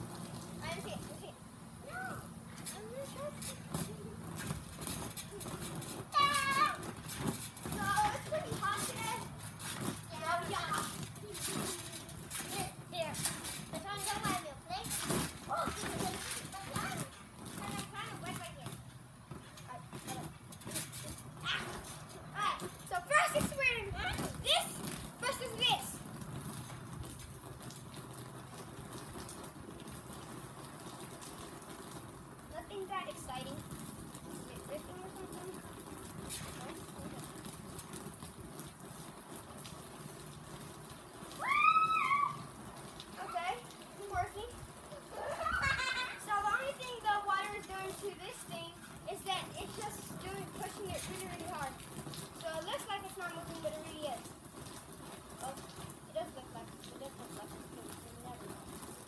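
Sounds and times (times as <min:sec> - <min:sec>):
steady background hum: 0:00.0 - 0:27.7, 0:32.5 - 0:37.2
children calling and squealing: 0:05.3 - 0:07.0, 0:41.4 - 0:42.5, 0:44.8 - 0:47.1.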